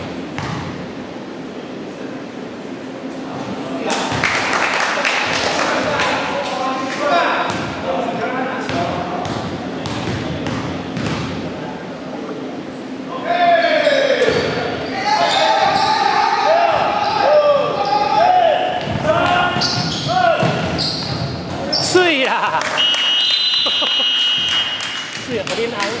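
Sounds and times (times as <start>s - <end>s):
sneakers squeaking: 0.0s - 0.8s, 8.7s - 11.5s, 13.8s - 22.2s
basketball bouncing: 0.4s - 0.7s, 8.7s - 11.4s, 18.8s - 21.4s.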